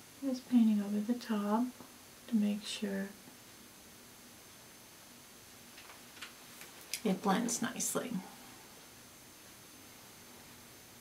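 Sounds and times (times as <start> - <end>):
person speaking: 6.9 - 8.3.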